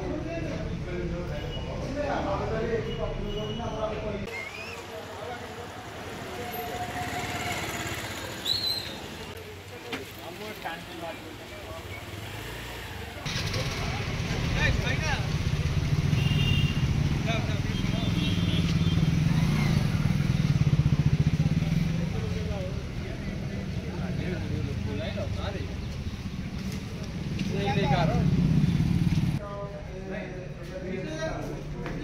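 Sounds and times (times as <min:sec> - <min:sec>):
people talking: 0:00.0 - 0:07.4, 0:13.2 - 0:15.4, 0:17.2 - 0:18.6, 0:21.0 - 0:25.8
vehicle engine passing: 0:05.0 - 0:09.4, 0:11.8 - 0:29.4.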